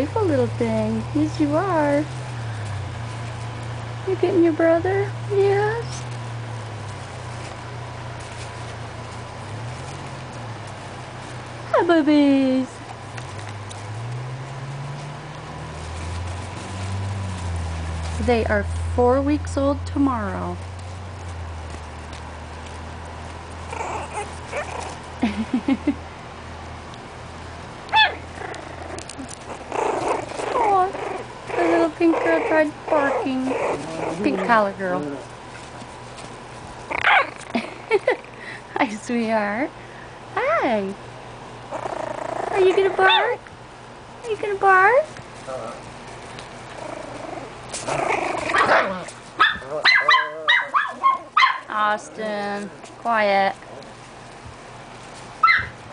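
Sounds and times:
puppies scuffling: 0.0 - 25.9, 27.0 - 39.5, 44.1 - 55.9
puppy vocalisation: 23.6 - 25.2, 27.9 - 35.4, 36.8 - 38.4, 41.7 - 43.5, 46.6 - 51.7.

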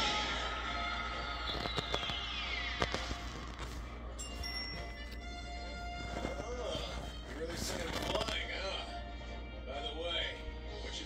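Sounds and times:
television background music: 0.0 - 11.0.

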